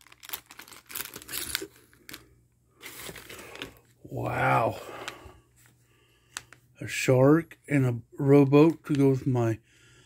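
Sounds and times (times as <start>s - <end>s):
plastic packing crinkling: 0.0s - 3.9s.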